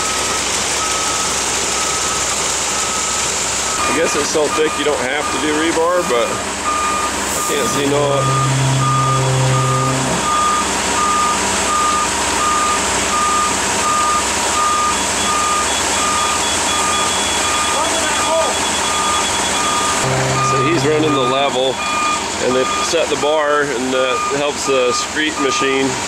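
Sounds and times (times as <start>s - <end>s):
concrete mixer truck engine: 0.0s - 26.0s
receiver beeping steadily: 6.6s - 23.2s, 24.0s - 25.7s
higher faster beeping: 7.4s - 11.1s, 17.0s - 22.9s.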